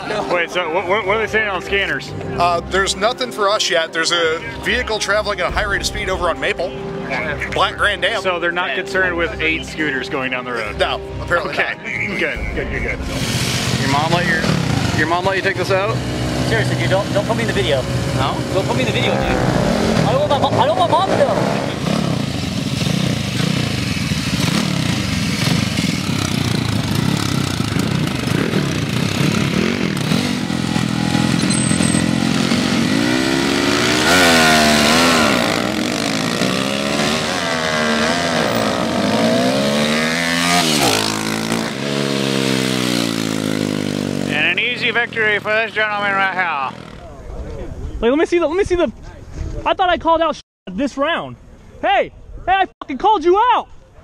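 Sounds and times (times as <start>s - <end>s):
scooter engines revving: 11.9s - 47.3s.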